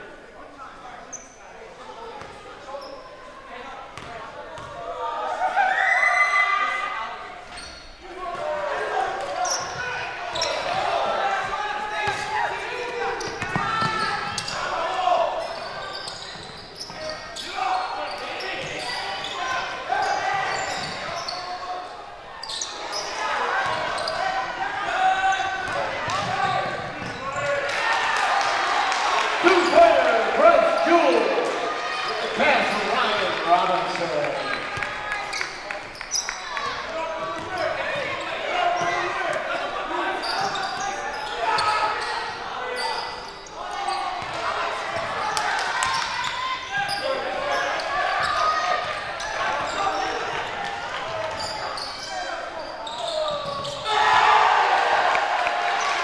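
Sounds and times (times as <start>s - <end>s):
basketball bouncing on court: 4.0s - 4.8s, 13.2s - 14.6s, 25.6s - 27.5s, 44.2s - 44.4s.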